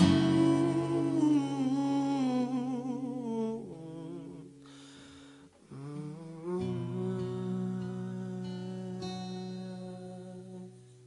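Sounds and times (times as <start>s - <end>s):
man humming a melody: 0.0s - 4.7s, 5.7s - 11.0s
acoustic guitar chord: 0.0s - 11.0s.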